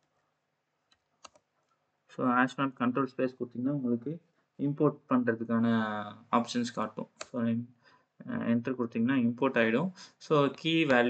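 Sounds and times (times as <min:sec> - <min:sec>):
computer keyboard keystrokes: 0:01.2 - 0:01.4.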